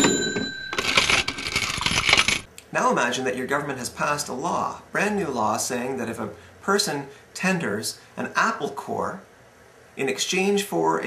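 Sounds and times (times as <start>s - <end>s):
metallic ding: 0.0s - 1.3s
coins jingling: 0.0s - 2.5s.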